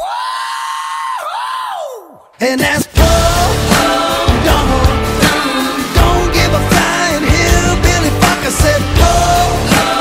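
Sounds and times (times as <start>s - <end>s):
high held vocal wail: 0.0s - 10.0s.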